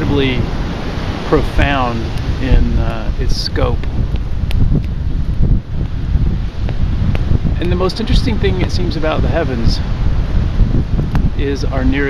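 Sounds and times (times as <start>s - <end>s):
wind buffeting microphone: 0.0s - 12.0s
faint clicks: 3.8s - 5.0s.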